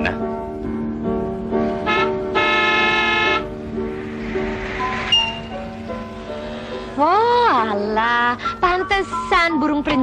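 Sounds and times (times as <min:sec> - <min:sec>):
film score music: 0:00.0 - 0:09.3
car horn honk: 0:01.8 - 0:03.6.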